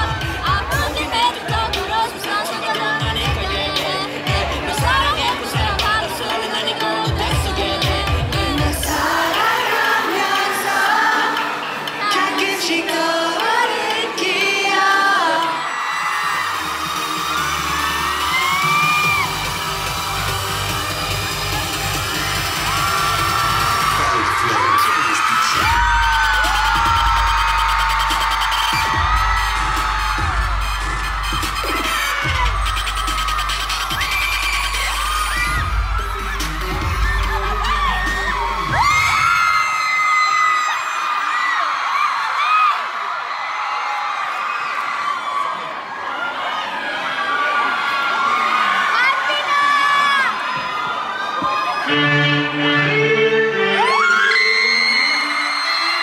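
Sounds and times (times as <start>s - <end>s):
pop music with heavy bass beat: 0.0s - 39.9s
fans screaming and whooping: 15.2s - 52.0s, 53.5s - 56.0s.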